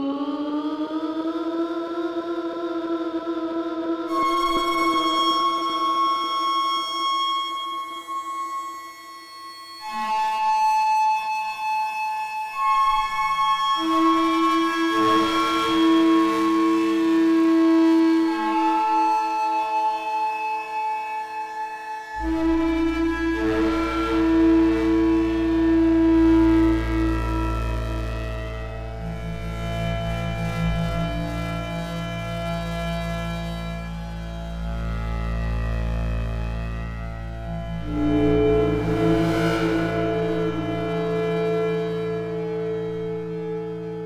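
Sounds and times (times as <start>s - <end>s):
ambient synthesizer drone: 0.0s - 44.0s
synthesizer drone: 22.1s - 44.0s.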